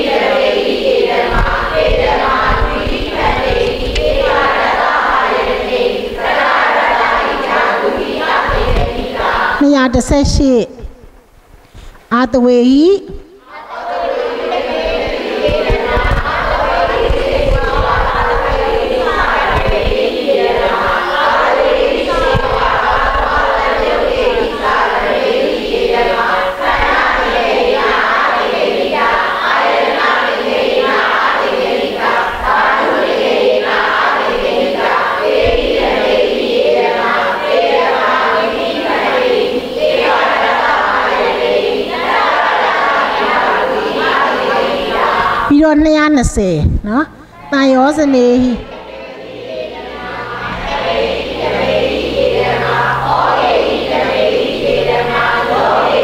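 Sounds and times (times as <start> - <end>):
group chanting in unison: 0.0 - 9.8, 13.2 - 45.6, 47.1 - 56.0.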